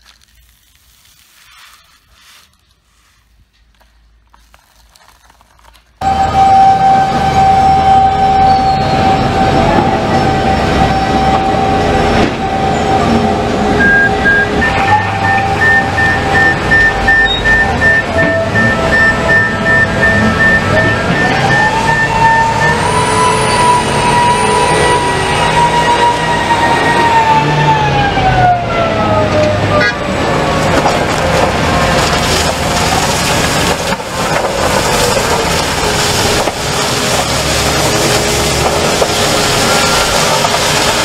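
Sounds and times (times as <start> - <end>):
haul truck engine rumble: 6.0 - 41.0.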